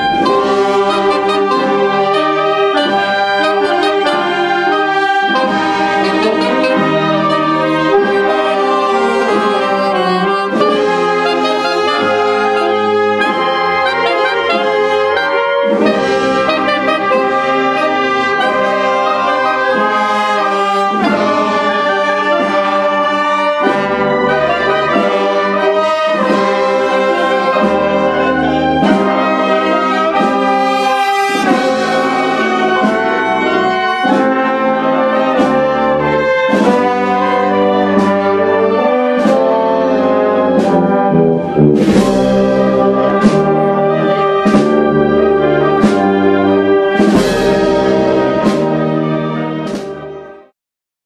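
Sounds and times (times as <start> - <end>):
marching brass band playing: 0.0 - 50.5.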